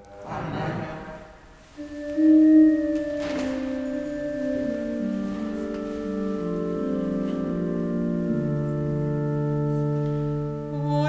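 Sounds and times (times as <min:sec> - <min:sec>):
organ chords on keyboard: 0:01.8 - 0:11.0.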